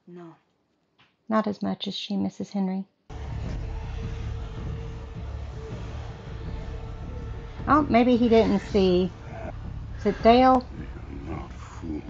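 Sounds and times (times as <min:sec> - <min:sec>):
steady low rumble: 0:03.1 - 0:12.0.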